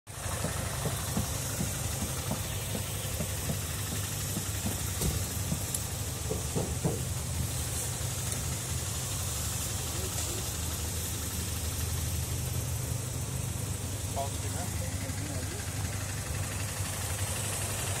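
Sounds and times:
motorcycle engine idling: 0.1 - 18.0.

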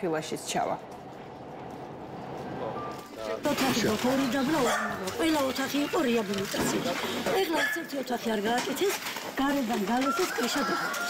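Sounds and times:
woman talking: 0.0 - 0.9, 3.4 - 11.0.

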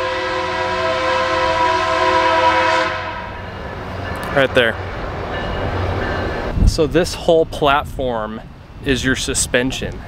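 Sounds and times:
train air horn: 0.0 - 3.4
rumble of passing train: 0.0 - 10.0.

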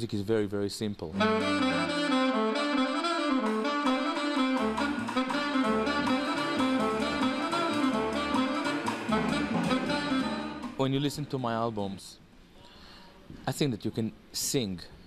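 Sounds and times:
alto saxophone jazz melody: 1.1 - 10.8
double bass notes: 1.1 - 11.2.

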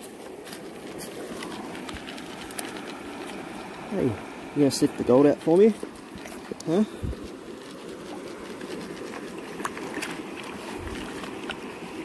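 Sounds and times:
creek water running: 0.0 - 12.0.

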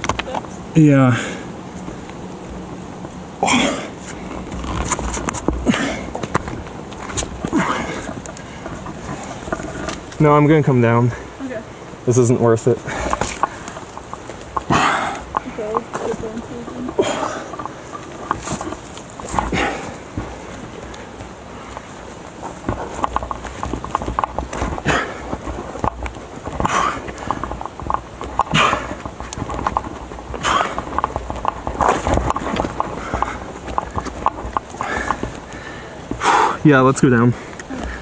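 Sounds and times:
breaths: 1.1 - 1.5, 5.6 - 6.2, 7.4 - 9.3, 12.8 - 13.8, 14.7 - 15.7, 17.0 - 17.6, 19.4 - 20.0, 24.8 - 25.4, 30.4 - 30.8, 32.9 - 36.6, 37.3 - 38.0
hands and shoes scraping on rock: 3.6 - 11.6, 12.2 - 38.0.

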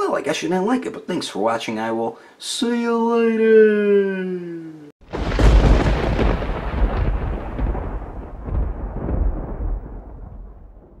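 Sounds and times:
deep boom with rumbling tail: 5.1 - 11.0.

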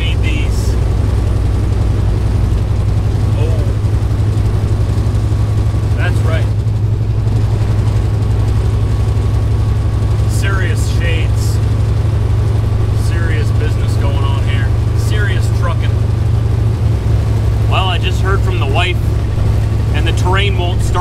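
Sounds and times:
truck engine and road noise: 0.0 - 21.0.

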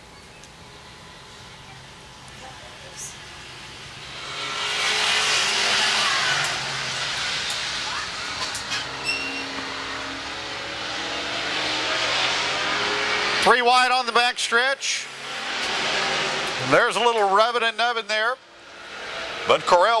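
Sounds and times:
race car engines accelerating: 0.4 - 20.0.

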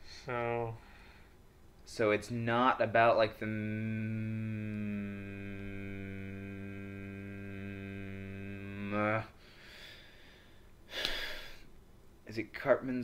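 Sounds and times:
faint breathing: 0.0 - 1.5, 9.2 - 11.7
man humming: 0.1 - 0.8, 2.9 - 9.4.

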